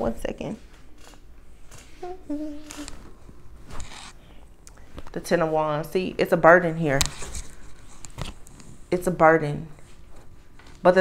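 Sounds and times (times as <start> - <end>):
murmured hum: 2.0 - 3.1
cards rustling and scraping: 3.6 - 4.2.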